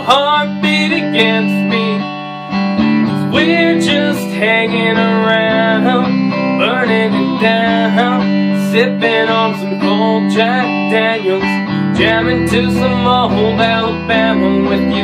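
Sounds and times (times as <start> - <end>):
man singing: 0.0 - 2.2, 3.1 - 15.0
electric guitar strumming: 0.0 - 15.0.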